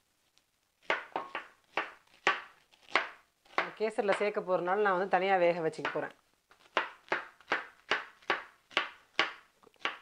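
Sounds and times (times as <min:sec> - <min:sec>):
knife chopping on wooden board: 0:00.8 - 0:04.3, 0:05.8 - 0:10.0.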